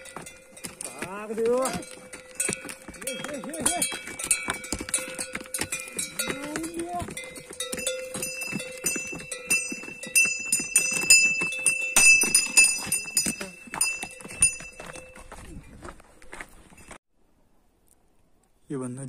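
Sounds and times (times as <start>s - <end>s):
neck bells ringing: 0.0s - 15.5s
hooves clopping on rock: 0.0s - 17.0s.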